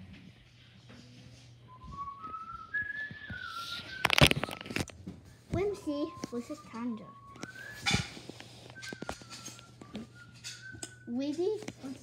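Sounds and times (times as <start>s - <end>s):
person whistling: 1.7s - 4.8s, 5.8s - 11.2s.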